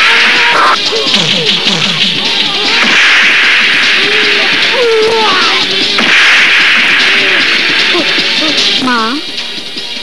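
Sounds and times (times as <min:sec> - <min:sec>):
music: 0:00.0 - 0:10.0
hard hits: 0:00.1 - 0:08.8.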